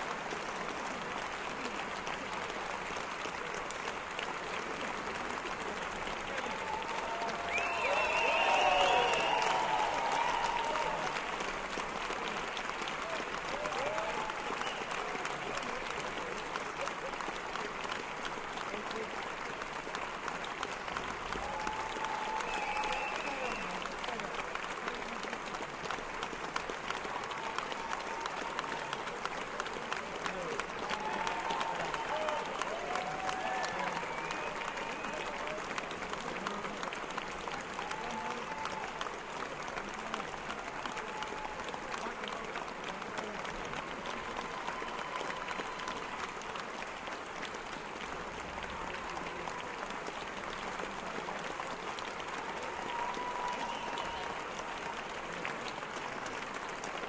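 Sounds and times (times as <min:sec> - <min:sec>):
large audience applauding: 0:00.0 - 0:57.0
scattered cheers: 0:06.2 - 0:16.2, 0:21.2 - 0:25.3, 0:26.1 - 0:57.0.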